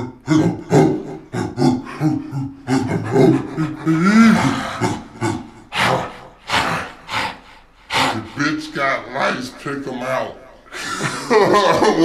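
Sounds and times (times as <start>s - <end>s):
man groaning: 0.0s - 7.0s
breathy hisses: 0.0s - 8.9s.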